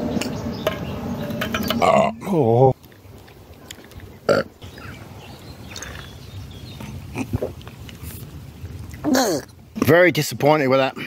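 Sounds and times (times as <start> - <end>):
man burping: 1.8 - 2.5, 4.3 - 4.5, 7.0 - 7.6.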